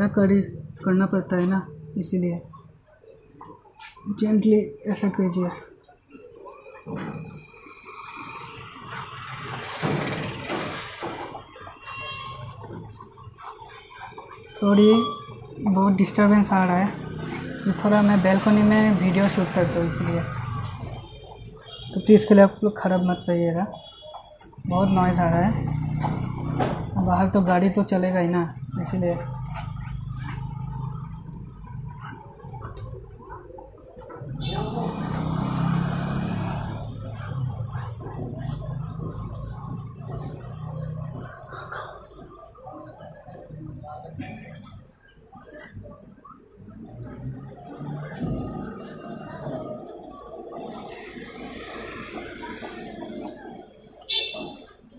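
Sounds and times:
street traffic: 0:00.0 - 0:54.9
road noise: 0:06.2 - 0:54.9
vehicle engine hum: 0:28.5 - 0:45.0.

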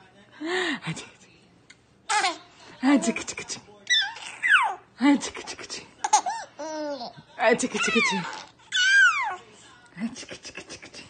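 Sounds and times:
baby laughing and squealing: 0:03.9 - 0:04.8, 0:07.8 - 0:09.4.

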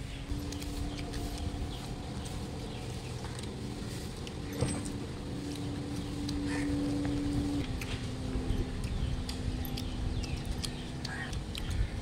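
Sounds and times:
motor hum: 0:00.0 - 0:12.0.

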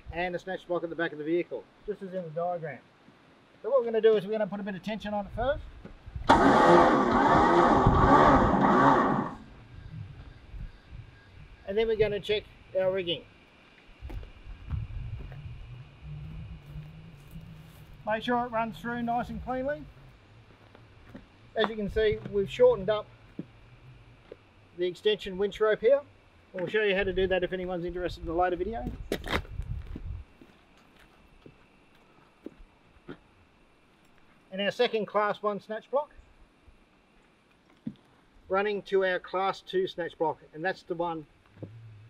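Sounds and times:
low steady hum: 0:00.0 - 0:42.0
footsteps on gravel: 0:20.4 - 0:22.4, 0:28.7 - 0:33.2.

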